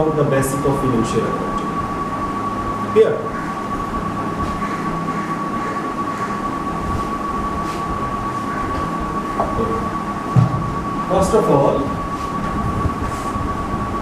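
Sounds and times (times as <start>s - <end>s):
room background noise: 0.0s - 14.0s
thin high whine: 0.0s - 14.0s
low thump: 10.3s - 10.8s.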